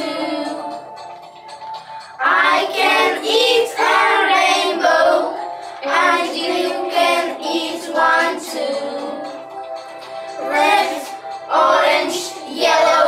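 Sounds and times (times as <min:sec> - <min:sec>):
children singing together: 0:00.0 - 0:01.0, 0:02.2 - 0:09.4, 0:10.4 - 0:13.0.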